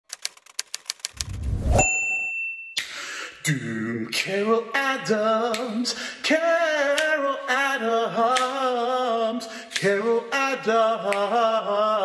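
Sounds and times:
typewriter key clicks: 0.1s - 1.4s
typewriter bell ding: 1.8s - 2.8s.

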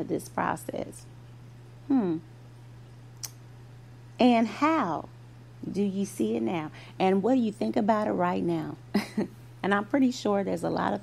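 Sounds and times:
steady low hum: 0.0s - 11.0s
woman humming hmm: 1.8s - 2.3s.

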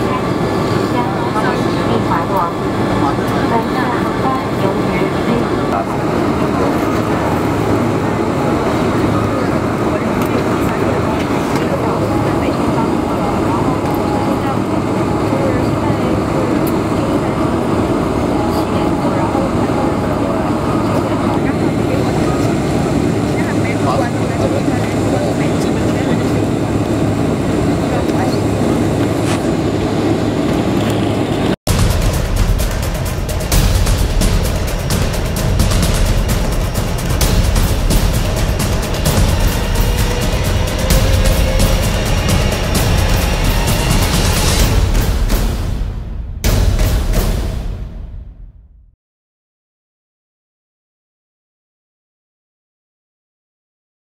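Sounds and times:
passengers talking: 0.0s - 31.6s, 32.6s - 45.4s
jet engine cabin rumble: 0.0s - 48.5s.

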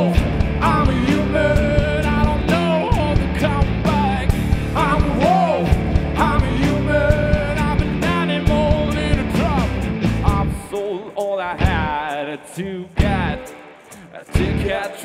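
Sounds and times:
low band accompaniment: 0.0s - 12.2s, 13.0s - 15.0s
man singing: 0.0s - 15.0s.

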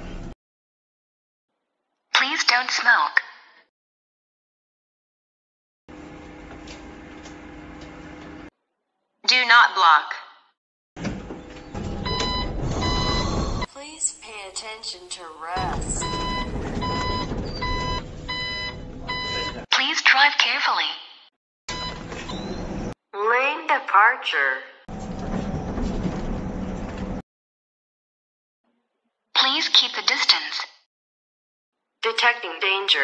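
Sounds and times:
electronic warning beeps: 11.8s - 13.7s, 15.6s - 19.7s, 21.7s - 22.8s
bus engine and road rumble: 15.4s - 19.6s.

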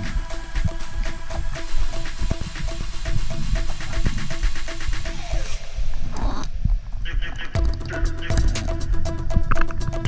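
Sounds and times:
electronic music with steady beat: 0.0s - 6.1s, 7.5s - 10.0s.

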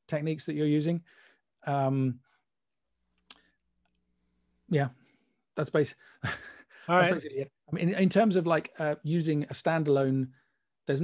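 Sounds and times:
person speaking word: 6.9s - 7.5s.

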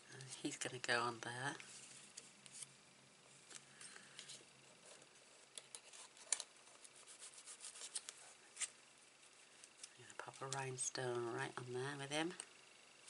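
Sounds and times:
light rubbing on paper: 6.8s - 8.7s.

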